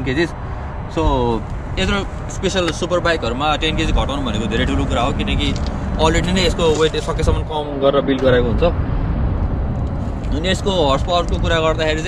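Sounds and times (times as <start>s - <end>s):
low outdoor rumble: 0.0s - 12.0s
man speaking: 0.9s - 8.8s.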